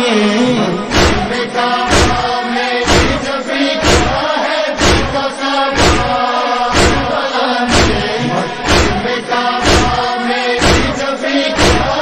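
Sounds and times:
chorus chanting: 0.0 - 12.0
lead reciter's voice: 0.0 - 12.0
heavy rhythmic thump: 0.8 - 12.0.

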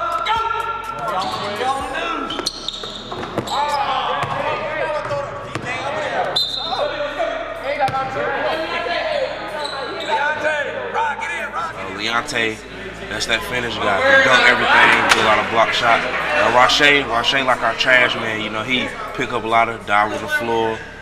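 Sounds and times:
players' voices: 0.0 - 21.0
basketballs bouncing on wooden floor: 2.3 - 5.9.

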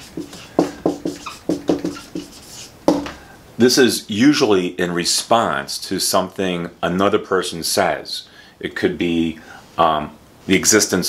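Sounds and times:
marker squeaking on whiteboard: 0.0 - 3.1.

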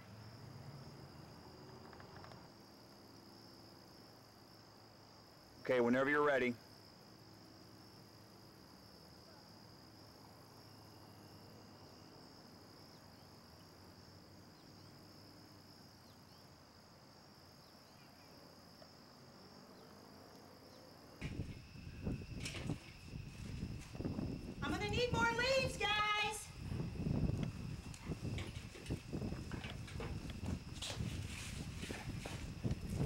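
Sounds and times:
crickets trilling: 0.0 - 33.0
bumps and rustling: 27.4 - 33.0.

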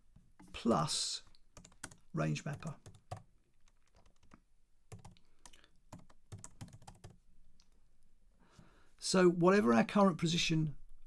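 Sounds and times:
keyboard typing: 1.6 - 7.2.

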